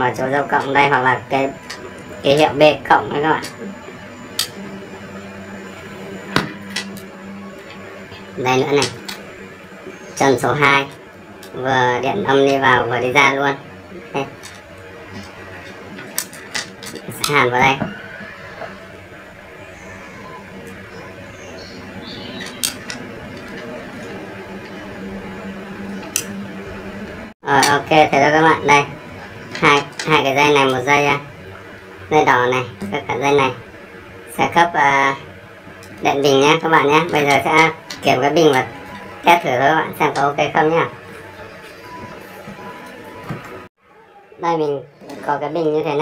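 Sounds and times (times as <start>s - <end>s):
soldering gun humming: 0.0s - 27.4s.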